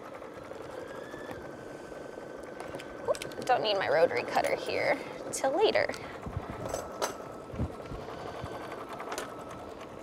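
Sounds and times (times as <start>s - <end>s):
embroidery machine running: 0.0s - 10.0s.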